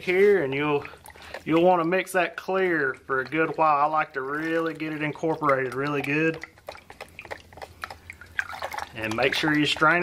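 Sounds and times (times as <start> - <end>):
liquid swishing: 0.0 - 10.0.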